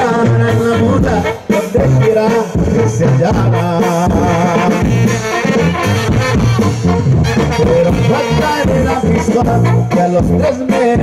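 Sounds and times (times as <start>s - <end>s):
banda music with brass: 0.0s - 11.0s.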